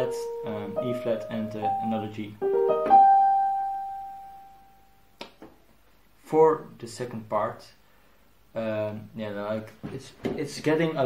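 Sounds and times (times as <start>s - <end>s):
electronic piano note: 0.0s - 4.9s.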